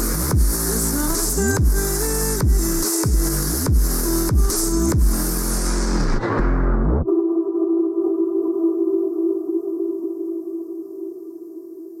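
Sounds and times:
sustained synthesizer tone: 3.4s - 12.0s.

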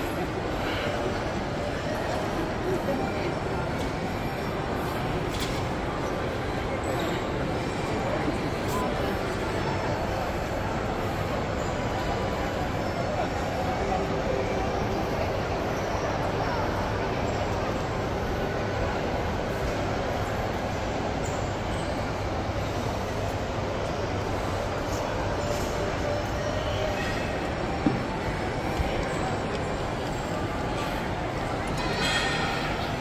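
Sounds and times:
shopping mall background noise: 0.0s - 33.0s.

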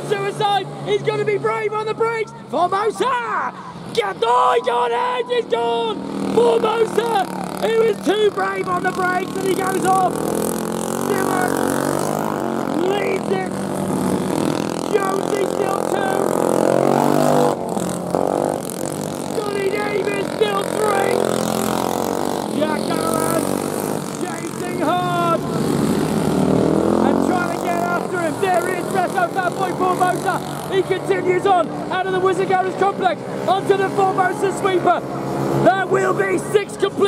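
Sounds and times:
kart engines revving: 0.0s - 37.0s.

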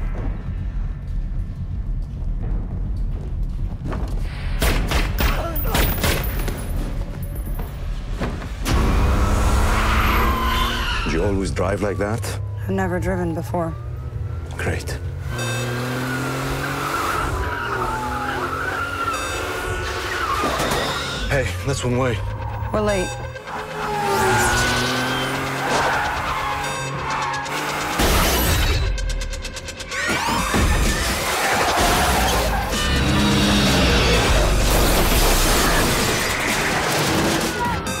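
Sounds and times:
film score music: 0.0s - 38.0s
engines running: 6.3s - 38.0s
car tyres squealing: 8.7s - 11.6s, 15.2s - 28.6s, 29.9s - 38.0s.

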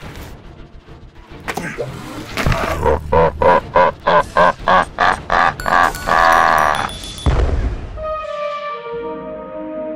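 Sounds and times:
creature laughing: 2.5s - 6.9s.

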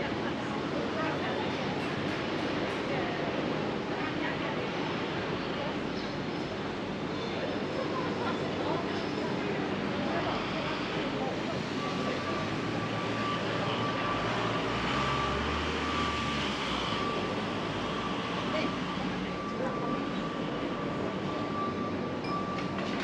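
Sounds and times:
low traffic rumble: 0.0s - 23.0s
passers-by talking: 0.0s - 23.0s.

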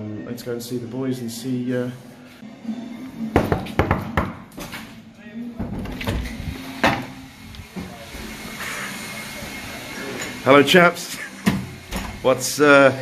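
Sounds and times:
door opening: 5.6s - 7.1s.

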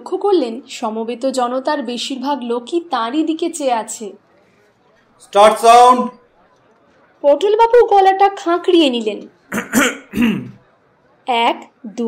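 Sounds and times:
man clearing his throat: 9.5s - 10.6s.

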